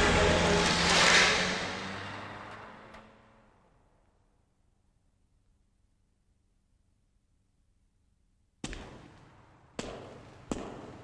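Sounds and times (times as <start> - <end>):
loud echoing bangs: 8.7 - 11.0.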